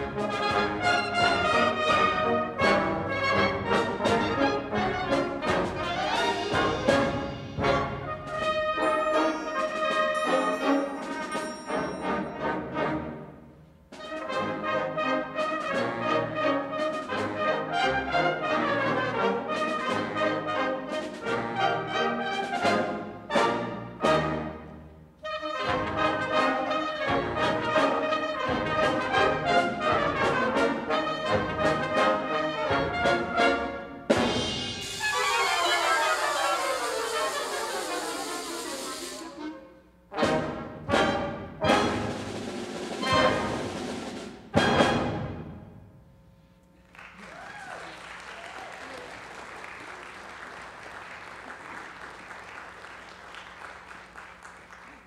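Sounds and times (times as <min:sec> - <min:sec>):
concert band playing: 0:00.0 - 0:13.0, 0:25.3 - 0:45.6.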